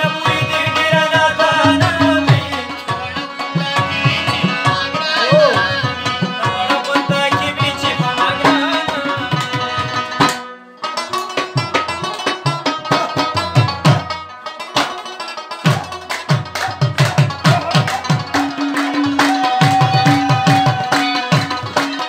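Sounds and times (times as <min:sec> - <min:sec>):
hand drum beats: 0:00.0 - 0:10.4, 0:11.2 - 0:22.0
harmoniums playing chords: 0:00.0 - 0:14.7, 0:16.1 - 0:22.0.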